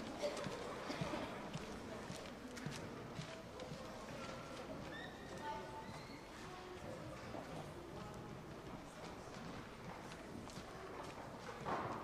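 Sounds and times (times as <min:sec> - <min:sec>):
murmur of audience voices: 0:00.0 - 0:12.0.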